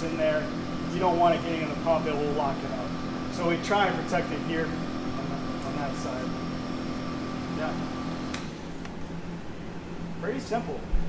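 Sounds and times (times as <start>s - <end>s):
faint high whine: 0.0s - 8.7s
vacuum pump humming: 0.0s - 11.0s.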